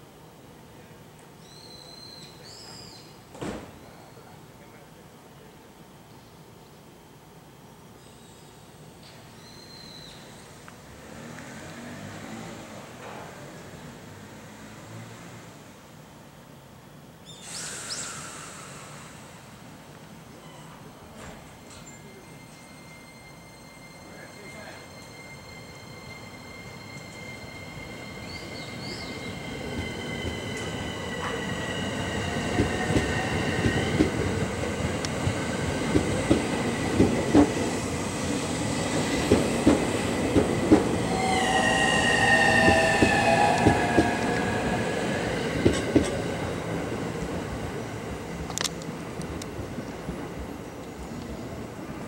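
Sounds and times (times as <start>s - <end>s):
train wheels clicking over rail joints: 32.5s - 37.8s, 38.9s - 41.0s, 45.6s - 46.2s.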